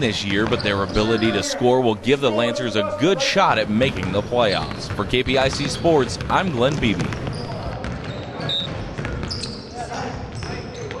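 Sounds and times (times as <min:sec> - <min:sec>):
sneakers squeaking: 0:00.0 - 0:01.6, 0:02.4 - 0:11.0
basketballs bouncing on hardwood: 0:00.2 - 0:01.1, 0:03.8 - 0:11.0.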